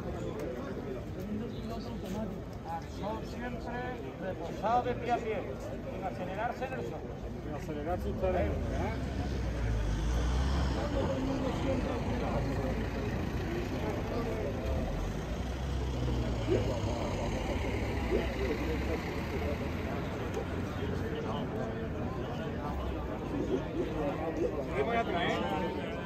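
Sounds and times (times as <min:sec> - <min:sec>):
murmur of voices: 0:00.0 - 0:26.0.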